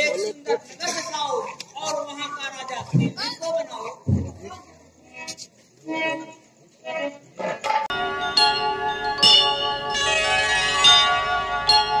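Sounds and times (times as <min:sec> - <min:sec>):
bright bell strikes: 0:07.9 - 0:12.0
sustained held tones: 0:07.9 - 0:12.0.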